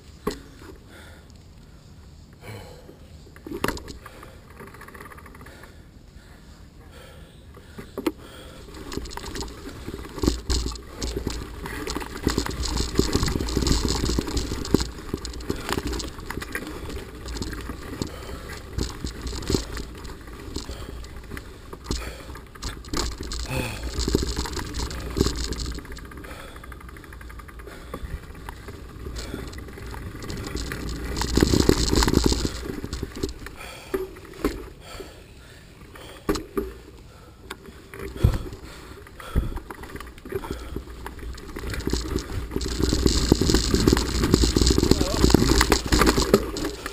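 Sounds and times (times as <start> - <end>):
bike rattling over bumps: 3.4 - 5.8, 7.7 - 35.0, 36.0 - 46.9.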